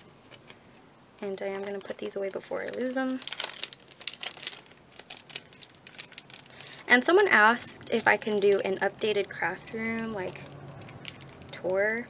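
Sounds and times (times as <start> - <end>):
plastic packaging crinkling: 0.0 - 0.7, 1.3 - 12.0.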